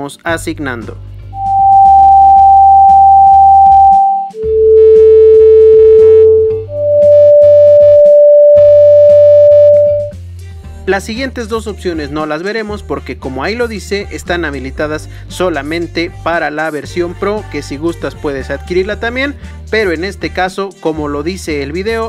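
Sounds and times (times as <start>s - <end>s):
pure steady tones: 1.4s - 10.1s.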